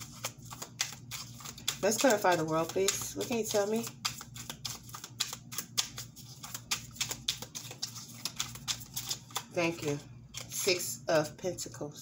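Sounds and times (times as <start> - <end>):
cards being shuffled: 0.0 - 10.8.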